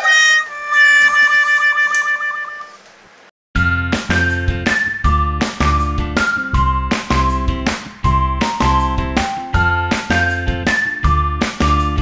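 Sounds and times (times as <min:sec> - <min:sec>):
held note with wavering pitch: 0:00.0 - 0:02.8.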